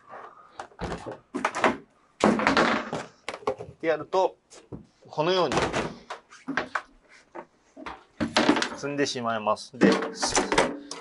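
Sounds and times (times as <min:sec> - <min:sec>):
drum cases knocking and scraping: 0:09.8 - 0:11.0.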